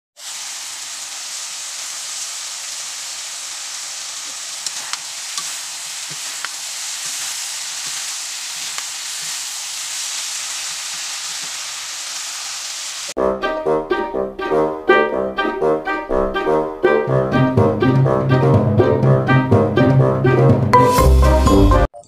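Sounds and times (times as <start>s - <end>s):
food sizzling in a wok: 0.2s - 13.2s.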